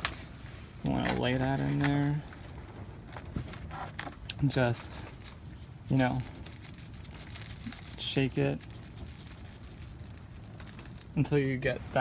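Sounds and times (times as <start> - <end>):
soil rattling in mesh sifter: 1.0 - 3.3, 4.5 - 11.5.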